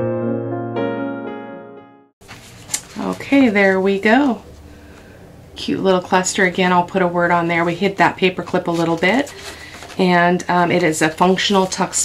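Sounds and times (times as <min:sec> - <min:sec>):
woman's wordless drawn-out voice: 0:02.9 - 0:04.5, 0:05.6 - 0:12.0.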